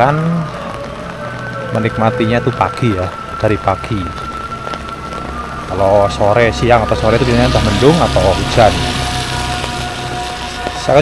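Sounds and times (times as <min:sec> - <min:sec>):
rain hissing: 0:00.0 - 0:11.0
motorcycle passing: 0:04.9 - 0:11.0.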